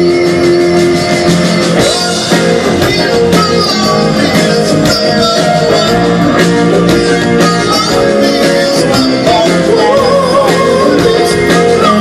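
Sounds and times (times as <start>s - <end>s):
drum beat: 0.0s - 12.0s
live rock band playing: 0.0s - 12.0s.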